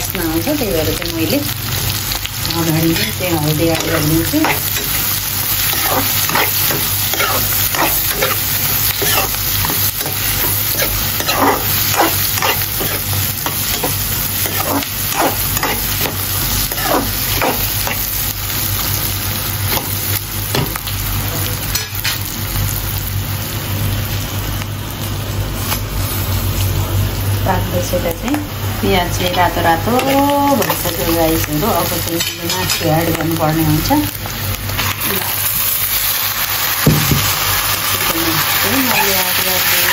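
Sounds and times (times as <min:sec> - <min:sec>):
onions sizzling in hot oil: 0:00.0 - 0:39.9
spoon scraping pan: 0:02.9 - 0:18.1.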